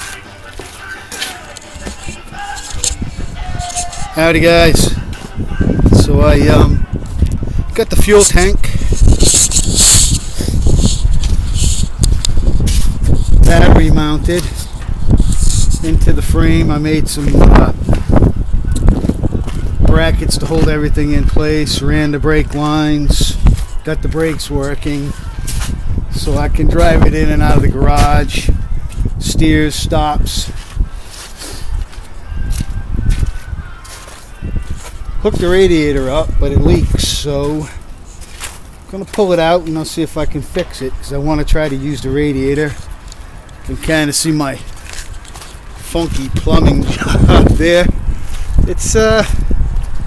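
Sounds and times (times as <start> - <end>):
footsteps on wet ground: 0.0 - 21.8, 22.4 - 26.5, 27.3 - 50.0
camera handling rustling and scraping: 1.5 - 4.1, 8.9 - 13.4, 44.7 - 45.6
wind rumbling on microphone: 1.6 - 50.0.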